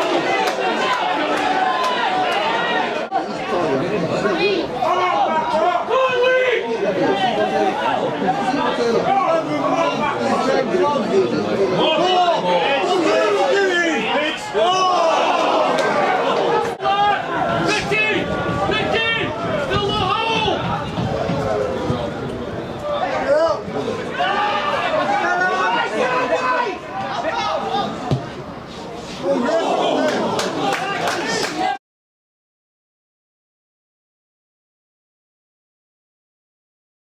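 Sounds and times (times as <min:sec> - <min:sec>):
indistinct crowd chatter: 0:00.0 - 0:31.8
people talking at once: 0:00.0 - 0:31.8.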